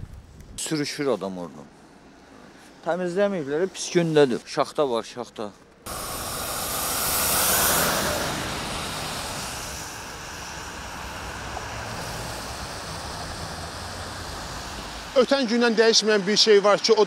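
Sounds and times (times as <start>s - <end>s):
street traffic hum: 0.0s - 17.0s
car tyres hissing on wet road: 5.9s - 17.0s.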